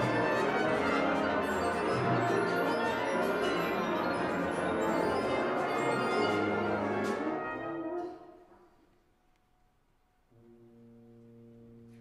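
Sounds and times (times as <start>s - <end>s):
wind ensemble playing chords: 0.0s - 8.4s.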